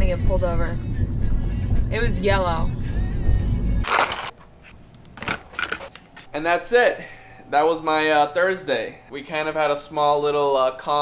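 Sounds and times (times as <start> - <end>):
low rumble inside car cabin: 0.0 - 3.8.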